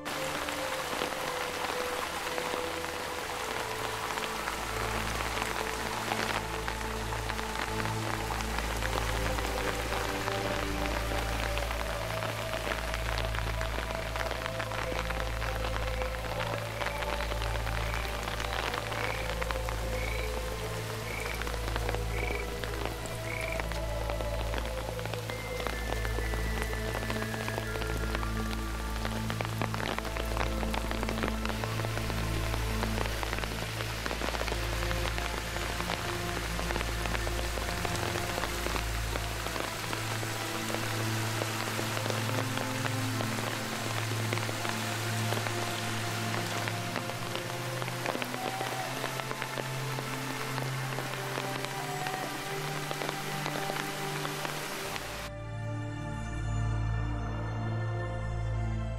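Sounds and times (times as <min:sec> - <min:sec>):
stream flowing: 0:00.0 - 0:55.4
slow ambient drone music: 0:00.0 - 0:58.9
steady rain falling: 0:00.0 - 0:58.9.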